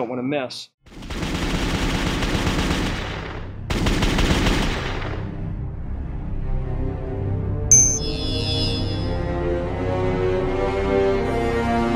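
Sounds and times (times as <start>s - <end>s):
rapid automatic gunfire: 0.9s - 5.3s.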